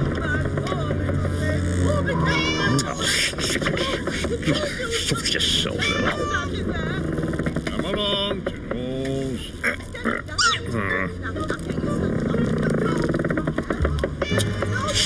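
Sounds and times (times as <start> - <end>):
cartoon character voices: 1.9 - 5.0, 9.6 - 13.2.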